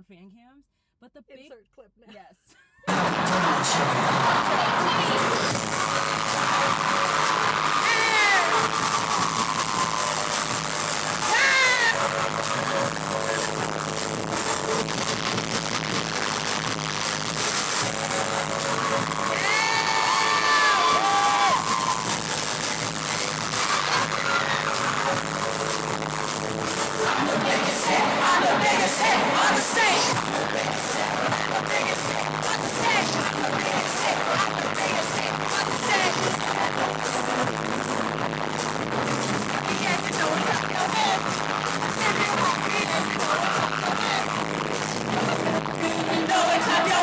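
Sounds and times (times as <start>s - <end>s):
fans screaming: 2.9s - 47.0s
loud concert music: 2.9s - 47.0s.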